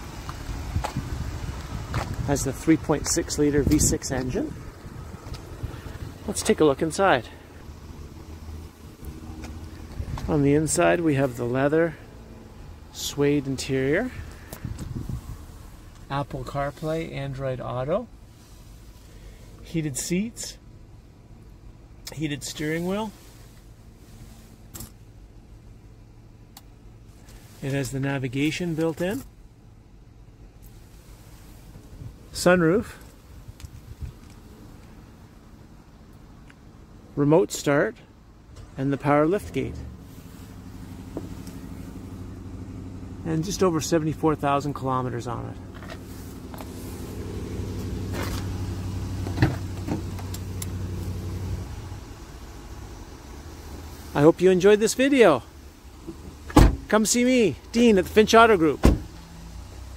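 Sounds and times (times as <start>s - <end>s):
car engine idling: 0.0s - 59.9s
car cabin hum: 39.1s - 59.9s
car door clunk: 49.2s - 50.4s, 56.0s - 56.9s, 58.8s - 59.2s.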